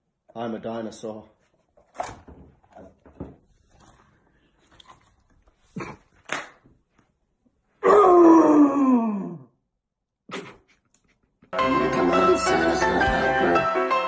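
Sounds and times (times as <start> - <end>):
man imitating dinosaur roar: 7.8 - 9.5.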